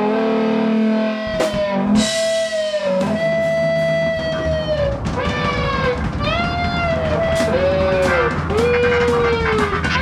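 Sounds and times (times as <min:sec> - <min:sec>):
electric guitar lead: 0:00.0 - 0:10.0
rock band backing: 0:00.0 - 0:10.0.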